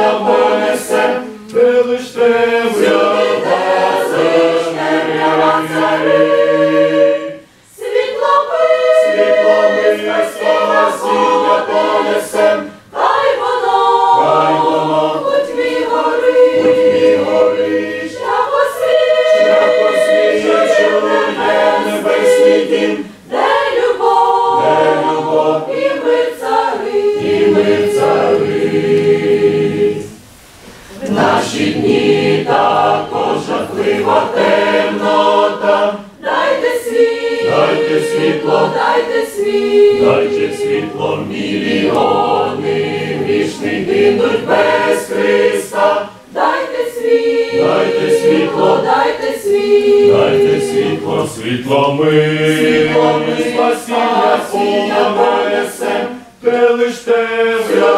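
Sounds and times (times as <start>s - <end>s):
choir singing a hymn: 0.0s - 57.9s.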